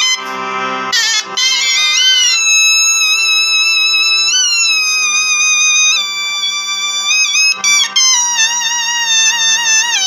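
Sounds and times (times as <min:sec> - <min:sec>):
harmonium drone: 0:00.0 - 0:10.0
shehnai holding long note: 0:00.0 - 0:10.0.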